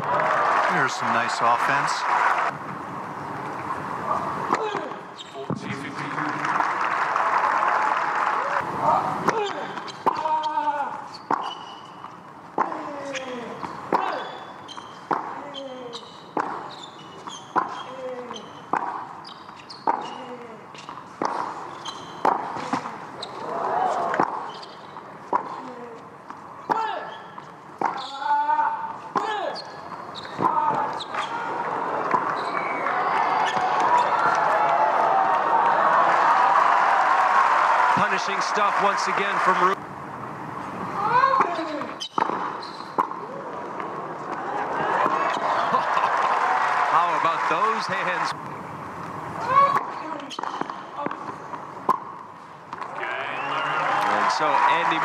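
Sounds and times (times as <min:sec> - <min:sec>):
applause and cheering: 0:00.0 - 0:02.5, 0:05.8 - 0:08.7, 0:32.5 - 0:39.8, 0:44.9 - 0:48.4, 0:52.9 - 0:55.0
crowd noise: 0:00.0 - 0:11.2, 0:28.7 - 0:55.0
racket striking tennis ball: 0:21.2 - 0:23.0, 0:24.0 - 0:24.6, 0:30.2 - 0:31.1, 0:41.3 - 0:43.2.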